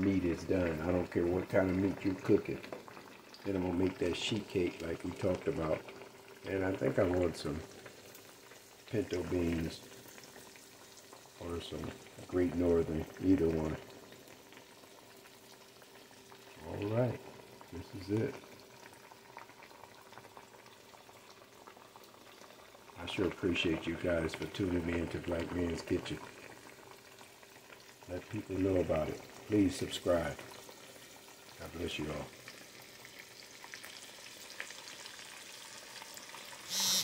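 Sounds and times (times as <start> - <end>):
water boiling with small pops: 0.0 - 36.7
fish deep-frying in oil: 0.0 - 37.0.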